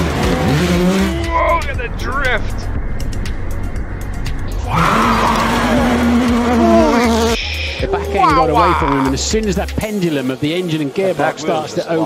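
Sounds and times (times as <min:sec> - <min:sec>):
racing car engine at high revs: 0:00.0 - 0:01.5, 0:03.0 - 0:07.4.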